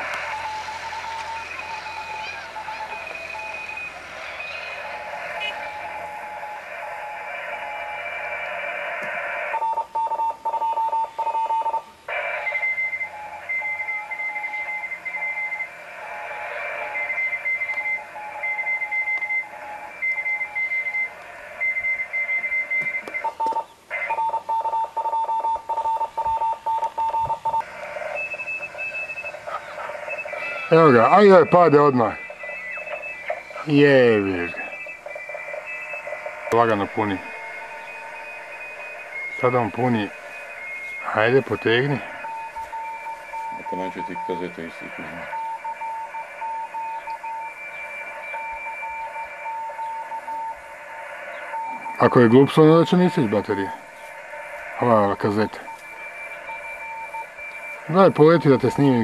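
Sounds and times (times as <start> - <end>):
electronic beeping tones: 0.0 - 59.0
radio hiss: 0.0 - 59.0.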